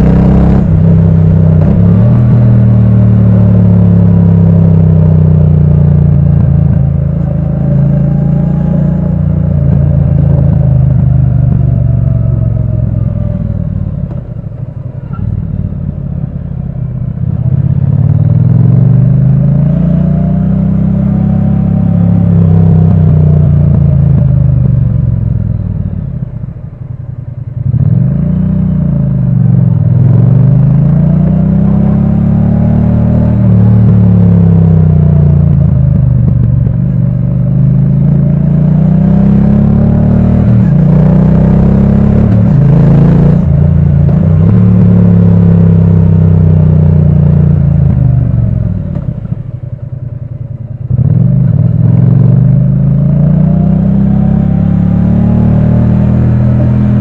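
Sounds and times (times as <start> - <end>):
motorcycle engine accelerating: 0.0 - 57.0.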